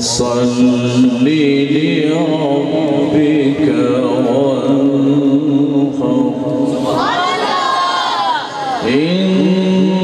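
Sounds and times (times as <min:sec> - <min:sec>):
men chanting: 0:00.0 - 0:10.0.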